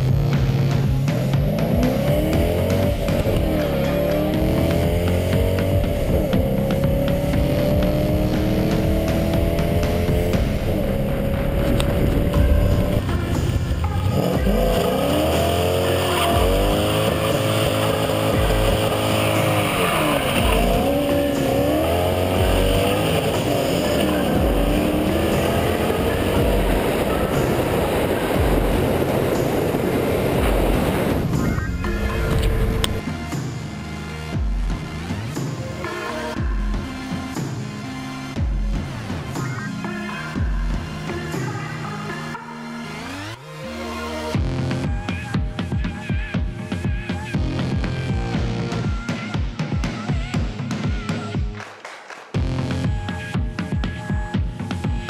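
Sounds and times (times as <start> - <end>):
car engine accelerating hard: 0.0 - 33.0.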